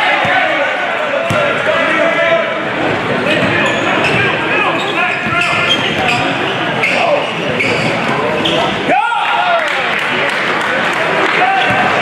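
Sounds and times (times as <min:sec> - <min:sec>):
crowd hubbub echoing: 0:00.0 - 0:12.0.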